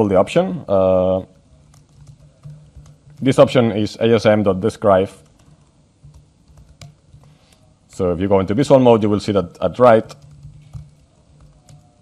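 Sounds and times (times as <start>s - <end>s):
faint laptop keyboard clicks: 1.6s - 3.4s, 9.4s - 12.0s.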